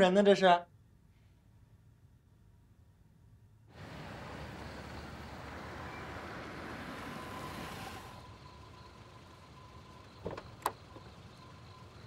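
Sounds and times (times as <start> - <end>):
car pulling up: 3.7 - 12.0.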